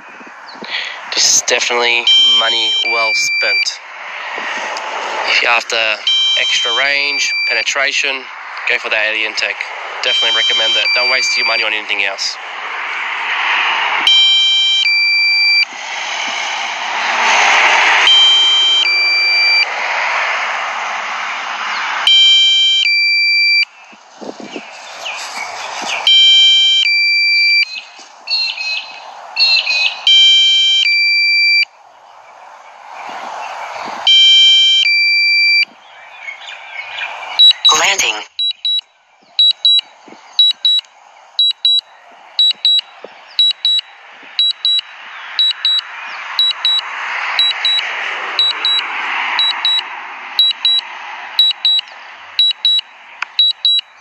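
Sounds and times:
rushing background noise: 0.0 - 54.0
stepped high-tone warning chime: 2.0 - 3.8, 6.0 - 7.7, 10.0 - 11.8, 18.1 - 19.7, 26.1 - 27.7, 37.4 - 53.9
rapid high beeps: 2.1 - 3.8, 6.0 - 7.7, 10.1 - 11.8, 14.1 - 15.7, 18.0 - 19.7, 22.1 - 23.7, 26.1 - 27.8, 30.1 - 31.7, 34.1 - 35.7, 37.4 - 53.9.

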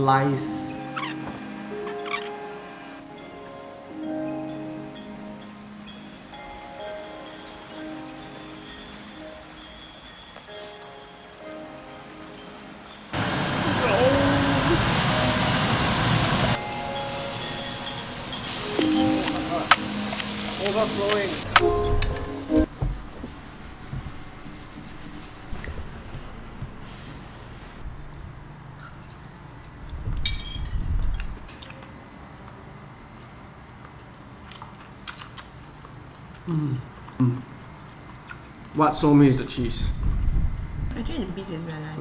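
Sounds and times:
background music with held notes: 0.0 - 13.2, 13.8 - 23.2
meat sizzling in frying pan: 14.6 - 21.5.

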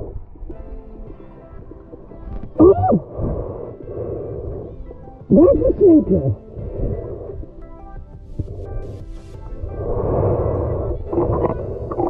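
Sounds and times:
muffled underwater rushing water: 0.0 - 12.0.

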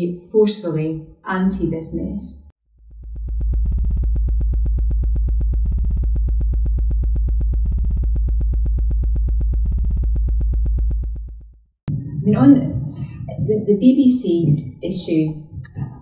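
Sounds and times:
pulsing synthesizer bass drone: 1.5 - 13.8.

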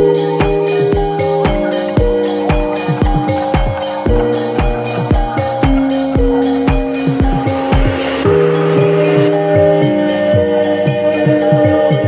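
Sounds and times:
kick drum and hi-hats: 0.0 - 10.5
sustained synth chords: 0.0 - 11.2.

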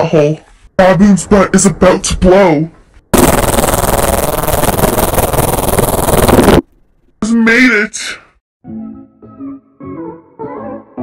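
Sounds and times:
wet sputtering pops: 3.2 - 6.7.

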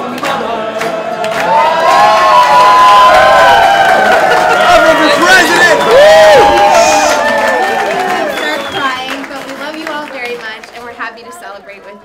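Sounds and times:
hand clapping: 0.1 - 2.6, 5.9 - 11.0
crowd cheering and whooping: 1.0 - 9.2.

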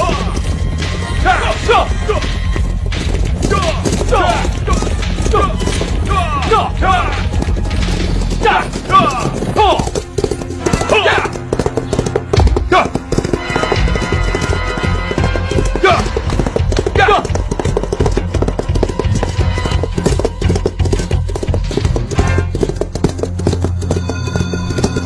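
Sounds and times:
background music: 0.0 - 25.0
horses galloping hoofbeats: 0.0 - 25.0
horses neighing: 0.0 - 25.0.

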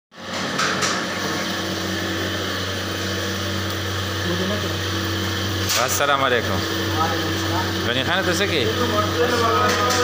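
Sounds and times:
kitchen equipment humming: 0.2 - 10.0.

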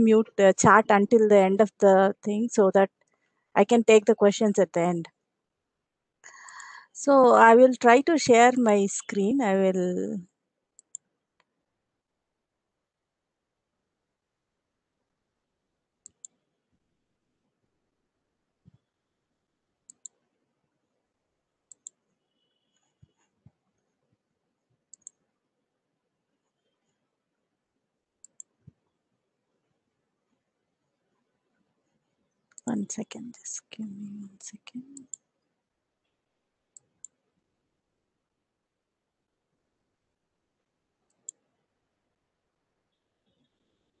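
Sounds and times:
computer mouse double-clicks: 10.8 - 11.0, 16.0 - 16.4, 19.9 - 20.2, 21.7 - 22.0, 24.9 - 25.2, 28.2 - 28.6
computer mouse clicks: 10.8 - 11.5, 16.0 - 16.4, 19.9 - 20.3, 21.7 - 22.1, 24.9 - 25.3, 28.2 - 28.8, 34.7 - 35.3, 41.1 - 41.5.

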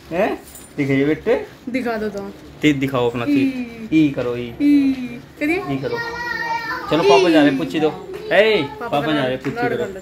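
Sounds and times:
cooing baby-talk voices: 5.5 - 8.9.

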